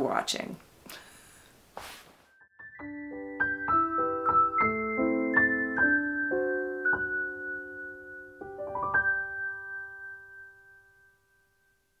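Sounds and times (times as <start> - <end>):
piano chord ringing: 2.6 - 12.0.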